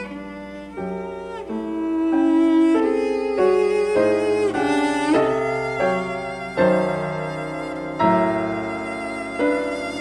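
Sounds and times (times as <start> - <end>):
bowed cello playing: 0.0 - 10.0.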